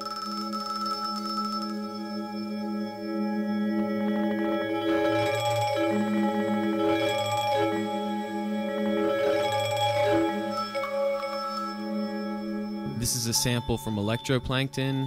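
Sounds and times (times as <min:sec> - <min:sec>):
synthesizer bell-like chord: 0:00.0 - 0:15.0.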